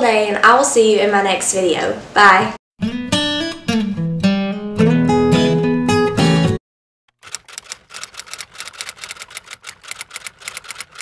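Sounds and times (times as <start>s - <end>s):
typewriter keys clacking: 7.1s - 11.0s.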